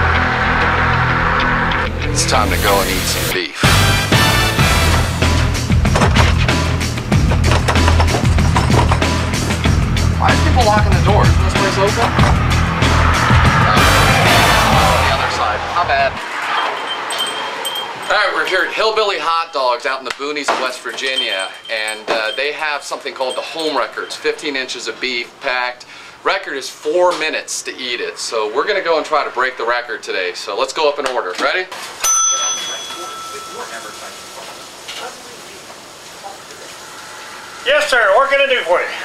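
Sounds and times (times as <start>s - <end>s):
low voices: 1.8s - 3.8s, 10.1s - 19.7s, 20.7s - 25.6s
small metal chime tinkling: 16.4s - 18.6s, 20.9s - 24.6s, 32.0s - 35.0s
small bell ringing: 16.4s - 18.8s, 20.9s - 24.7s, 32.0s - 34.8s.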